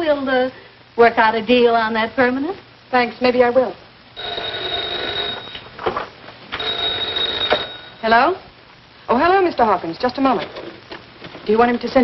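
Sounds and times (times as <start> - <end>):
telephone bell ringing: 4.2 - 5.7, 6.6 - 8.1.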